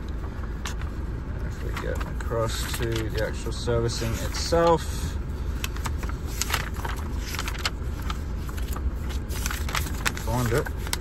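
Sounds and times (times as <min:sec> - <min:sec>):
diesel engine idling: 0:00.0 - 0:11.0
paper pages rustling: 0:00.2 - 0:11.0.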